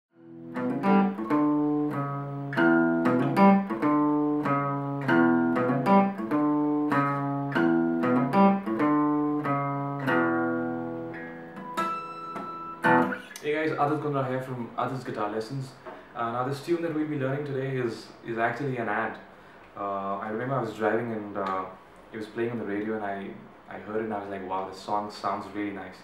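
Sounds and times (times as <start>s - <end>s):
acoustic guitar single-note riff: 0.1s - 13.3s
man speaking: 13.2s - 26.0s.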